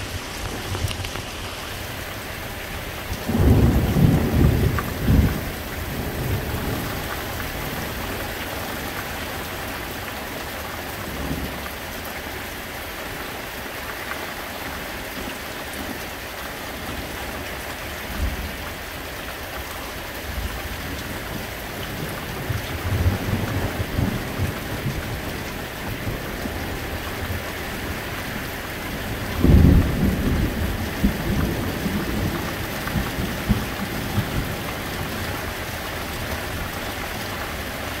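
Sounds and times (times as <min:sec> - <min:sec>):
steady rain falling: 0:00.0 - 0:38.0
thunder rolling: 0:03.1 - 0:08.0.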